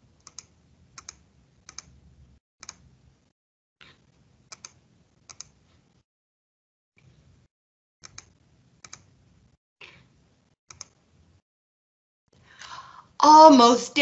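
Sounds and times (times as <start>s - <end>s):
computer input clicks: 4.5s - 5.6s, 8.0s - 9.1s, 10.7s - 11.0s.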